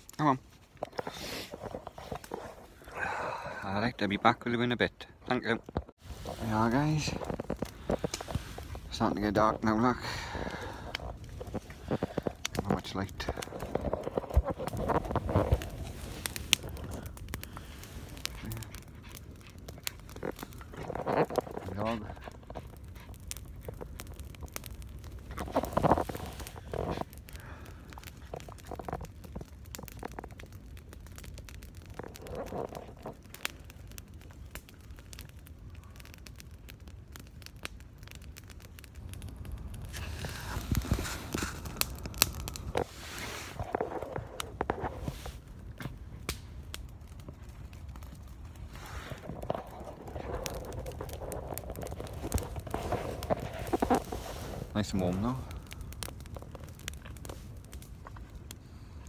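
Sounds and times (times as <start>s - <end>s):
campfire crackling and popping: 0.0s - 59.0s.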